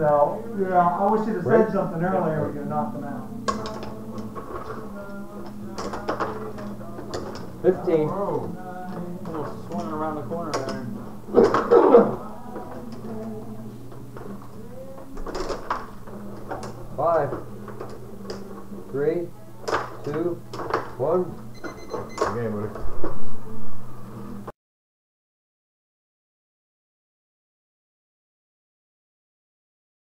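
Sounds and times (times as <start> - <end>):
indistinct voices: 0.0 - 24.5
steady low hum: 0.0 - 24.5
rod hockey puck and players clicking: 3.5 - 7.5.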